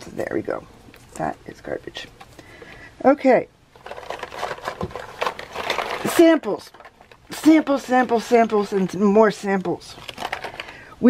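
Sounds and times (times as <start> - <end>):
boxes and tubes shuffled by hand: 3.7 - 10.8
sachets crinkling: 3.7 - 10.9.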